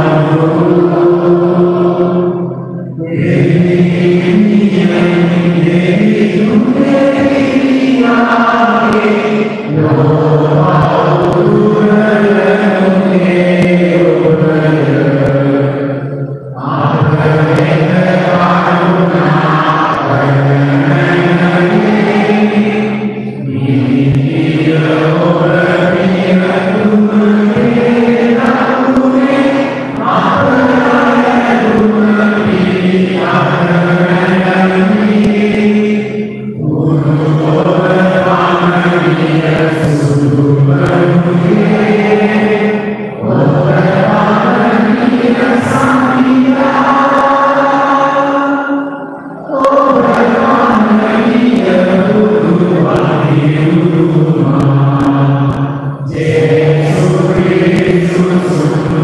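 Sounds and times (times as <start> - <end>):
man chanting a prayer: 0.0 - 59.0.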